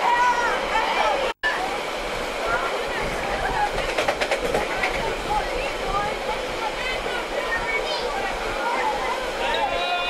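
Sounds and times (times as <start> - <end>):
train rushing noise: 0.0 - 10.0
indistinct voices: 2.4 - 10.0
train wheel clicks: 3.6 - 5.4.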